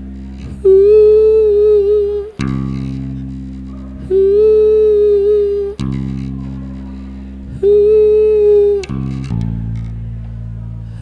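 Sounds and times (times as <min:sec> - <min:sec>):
electric bass droning: 0:00.0 - 0:11.0
person humming: 0:00.3 - 0:09.4.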